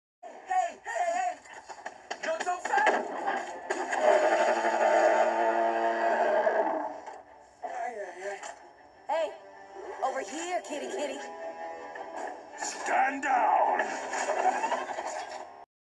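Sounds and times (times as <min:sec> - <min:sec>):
beast roar: 0:04.6 - 0:07.0.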